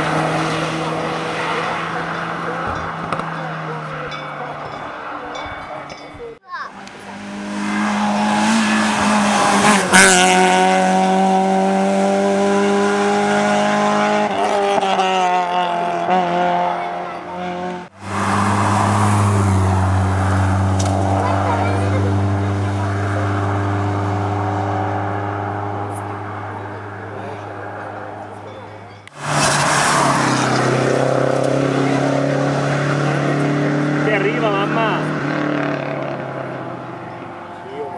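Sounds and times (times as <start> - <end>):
racing car engines at high revs: 0.0 - 5.4, 6.7 - 37.9.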